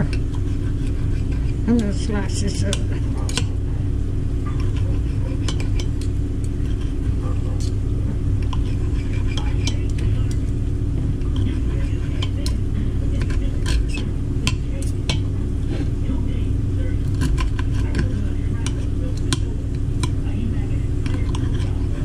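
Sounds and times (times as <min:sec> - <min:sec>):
knife and fork scraping a plate: 0:00.0 - 0:01.6, 0:04.5 - 0:07.8, 0:08.4 - 0:10.4, 0:11.2 - 0:15.9, 0:17.2 - 0:19.4, 0:21.0 - 0:22.0
steady low hum: 0:00.0 - 0:22.0.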